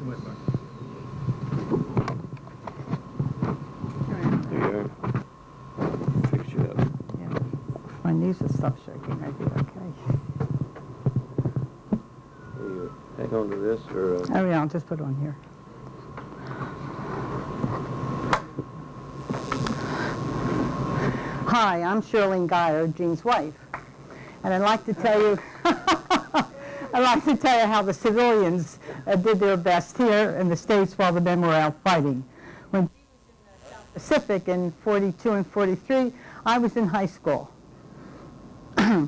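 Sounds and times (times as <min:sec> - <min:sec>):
faint steady high tone: 0:00.0 - 0:01.2
indistinct low murmuring: 0:12.3 - 0:14.3.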